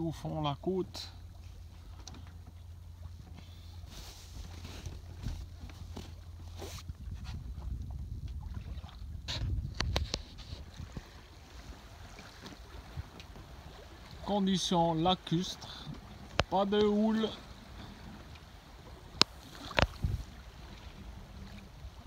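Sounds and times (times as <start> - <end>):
water washing past hull: 0.0 - 22.0
wind rumbling on microphone: 3.0 - 14.4, 16.0 - 22.0.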